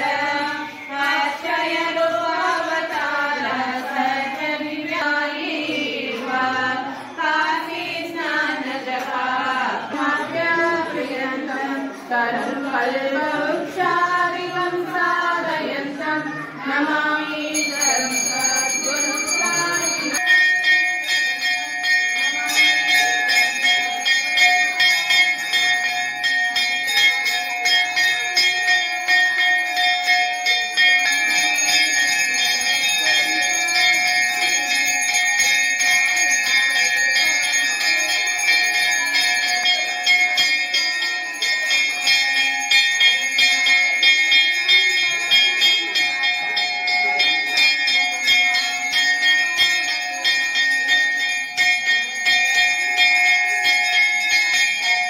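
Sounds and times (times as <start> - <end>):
bells ringing rapidly: 0.0 - 55.0.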